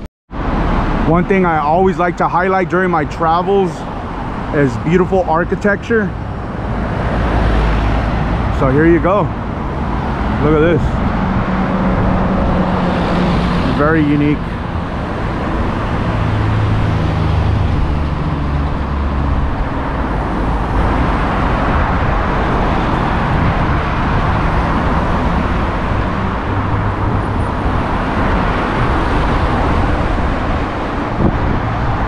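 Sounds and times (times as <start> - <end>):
vehicles driving past: 0.3 - 32.0.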